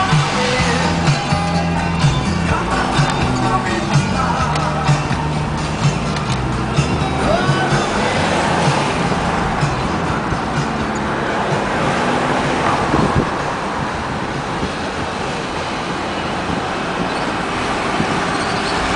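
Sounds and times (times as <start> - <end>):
car road and engine noise: 0.0 - 18.9.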